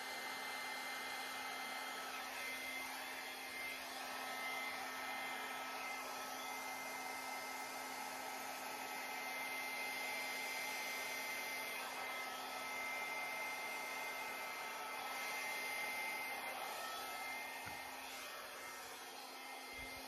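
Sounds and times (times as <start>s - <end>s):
hair dryer running: 0.0s - 20.0s.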